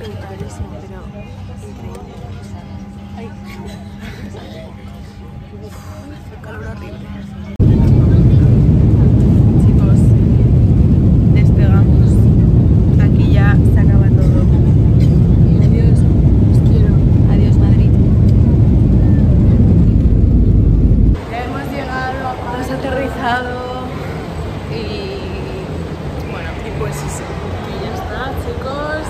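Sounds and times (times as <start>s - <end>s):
faint voices: 0.0s - 29.0s
jet airliner cabin rumble: 7.5s - 21.4s.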